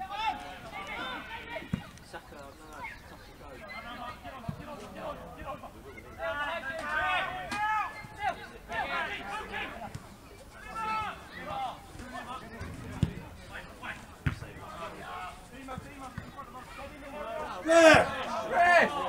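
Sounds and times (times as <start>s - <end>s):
players shouting calls: 0.0s - 19.0s
football kicked hard: 12.6s - 13.2s, 14.2s - 14.6s.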